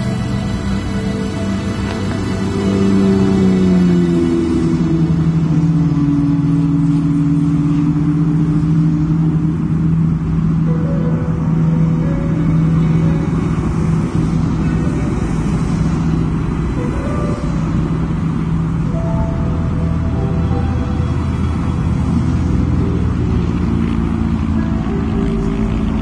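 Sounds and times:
heavy motorway traffic rumble: 0.0s - 26.0s
slow droning background music: 0.0s - 26.0s.

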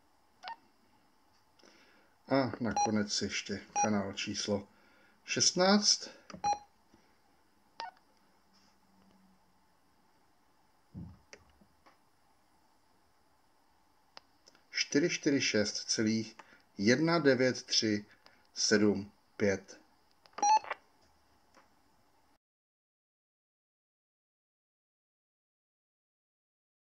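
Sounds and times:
radio key beeps: 6.4s - 6.6s, 20.4s - 20.8s.

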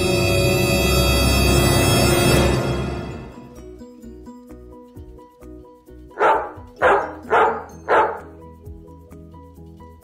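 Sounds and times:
background music: 0.0s - 10.0s
dog barking: 6.2s - 8.4s.

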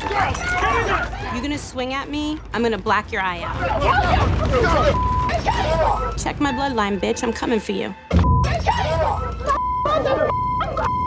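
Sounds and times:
women shouting: 0.0s - 1.6s, 3.4s - 6.2s, 8.5s - 10.8s.

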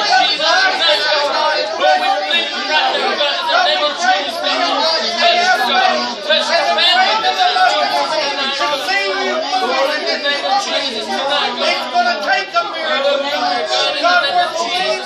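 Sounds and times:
group of people praying aloud: 0.0s - 15.0s.

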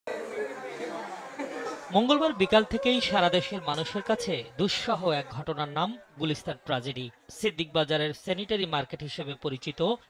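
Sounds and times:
indistinct chatter of voices: 0.1s - 9.4s.

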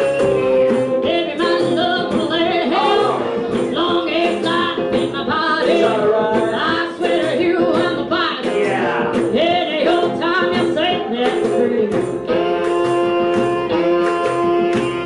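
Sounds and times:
drums beating: 0.0s - 15.0s
electric guitar: 0.0s - 15.0s
woman singing into microphone: 1.0s - 14.1s.

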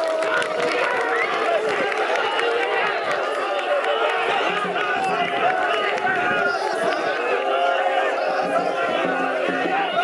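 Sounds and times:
crowd of men shouting: 0.0s - 10.0s.

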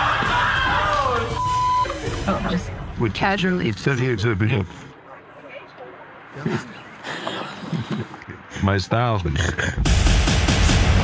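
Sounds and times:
low background noise: 0.1s - 9.8s.

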